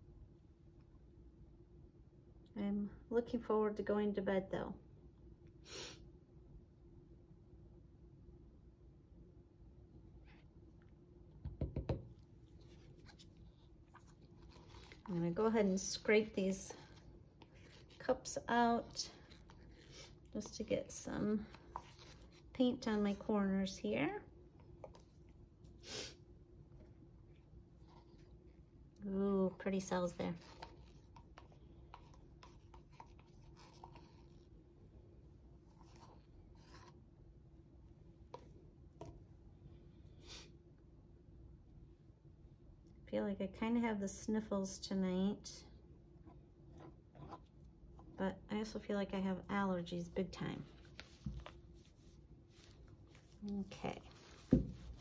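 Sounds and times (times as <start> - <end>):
faint room hum: 0.0 - 55.0
plastic cups scratching and tapping: 30.2 - 34.3.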